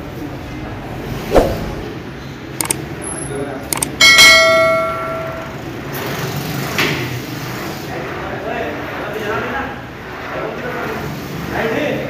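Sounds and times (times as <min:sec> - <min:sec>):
metal weights clanging: 0:04.0 - 0:05.7.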